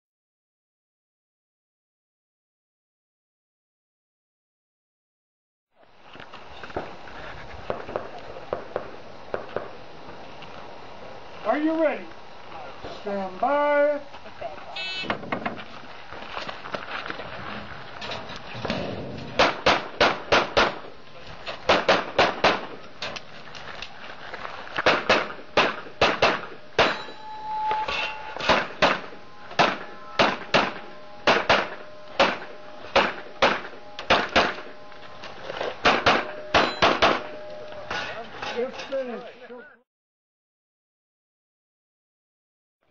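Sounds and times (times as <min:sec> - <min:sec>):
rapid handgun shots: 0:19.4 - 0:20.9, 0:21.7 - 0:22.8, 0:24.8 - 0:27.0, 0:28.4 - 0:34.7, 0:35.8 - 0:37.3
shot timer beep: 0:36.2 - 0:37.8.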